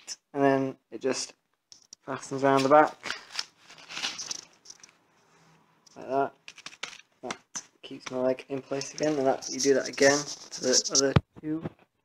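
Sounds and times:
velcro straps crackling: 0:02.6 - 0:05.0, 0:08.7 - 0:11.1.

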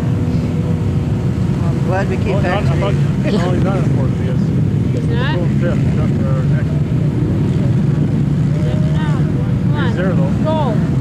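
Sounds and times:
racing quad engines: 0:00.0 - 0:11.0.

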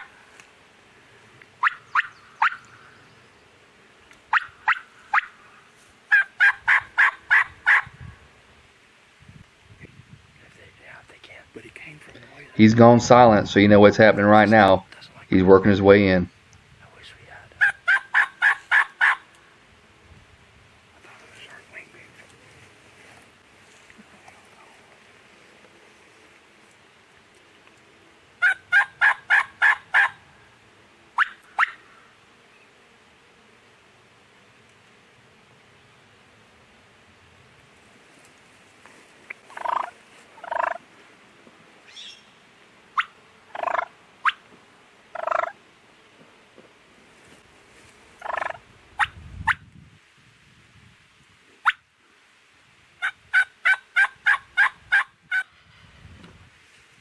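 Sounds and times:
turkey gobbling: 0:01.6 - 0:02.7, 0:04.3 - 0:05.4, 0:06.1 - 0:07.9, 0:17.6 - 0:19.3, 0:28.4 - 0:30.2, 0:31.2 - 0:31.8, 0:39.5 - 0:40.8, 0:43.0 - 0:44.4, 0:45.2 - 0:45.6, 0:48.2 - 0:49.1, 0:53.0 - 0:55.5
turkey yelping calls: 0:01.6 - 0:02.7, 0:04.3 - 0:05.4, 0:06.1 - 0:07.9, 0:17.6 - 0:19.3, 0:28.4 - 0:30.2, 0:31.2 - 0:31.8, 0:39.5 - 0:40.8, 0:43.0 - 0:44.4, 0:45.2 - 0:45.6, 0:48.2 - 0:49.6, 0:53.0 - 0:55.5.

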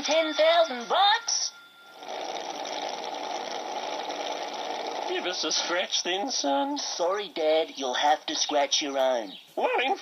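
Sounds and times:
small motor running: 0:01.9 - 0:05.4.

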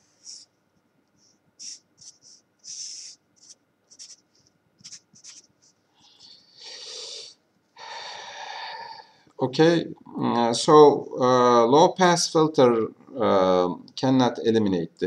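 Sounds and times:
marker scratching across paper: 0:00.0 - 0:00.5, 0:01.2 - 0:05.8.

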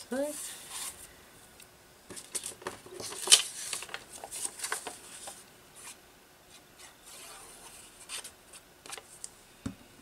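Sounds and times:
paper rustling and crinkling: 0:02.1 - 0:09.3.

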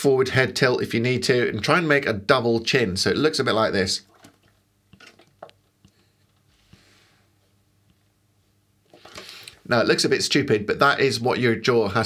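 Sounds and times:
soft breath: 0:05.8 - 0:07.6.

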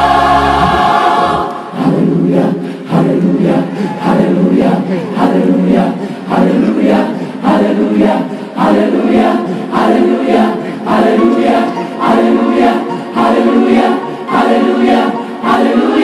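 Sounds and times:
gospel choir singing loudly: 0:00.0 - 0:16.0.

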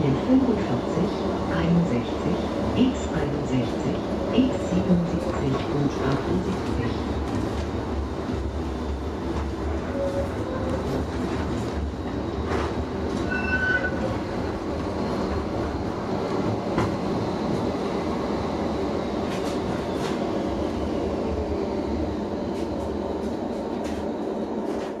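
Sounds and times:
tram rumbling: 0:00.0 - 0:25.0.

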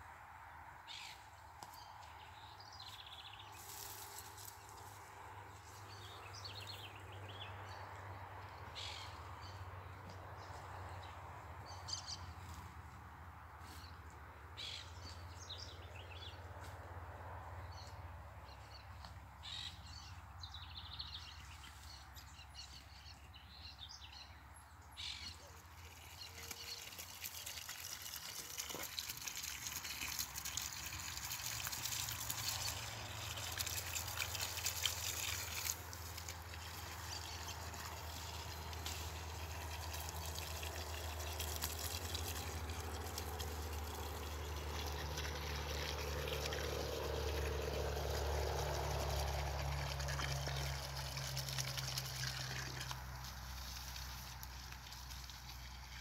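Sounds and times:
hose water splashing: 0:02.8 - 0:06.9, 0:25.5 - 0:56.0.

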